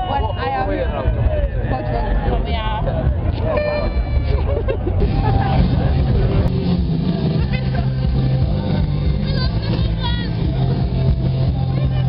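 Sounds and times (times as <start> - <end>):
crowd voices: 0.0 - 12.0
low rumble of stage music bass: 0.0 - 12.0.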